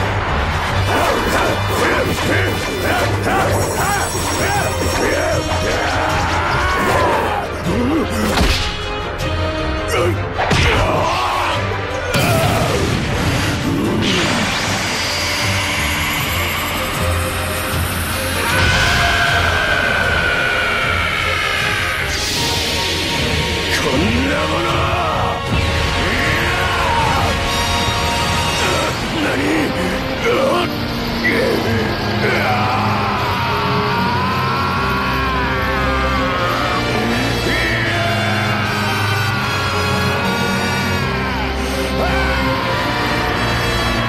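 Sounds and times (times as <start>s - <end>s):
soundtrack music: 0.0s - 44.0s.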